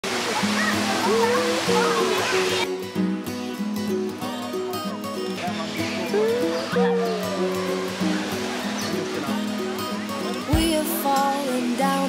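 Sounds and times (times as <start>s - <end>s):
small waterfall rushing: 0.0s - 12.0s
song with held notes: 1.2s - 12.0s.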